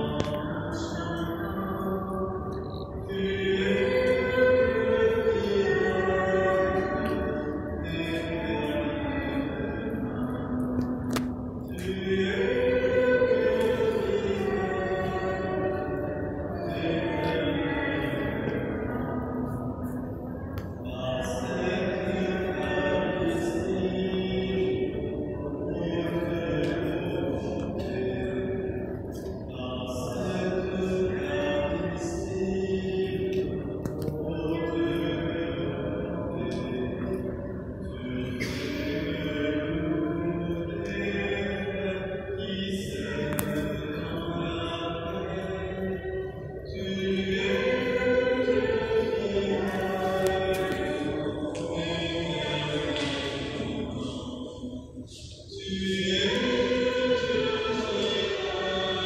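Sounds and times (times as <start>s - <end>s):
church hymn music: 0.0s - 59.0s.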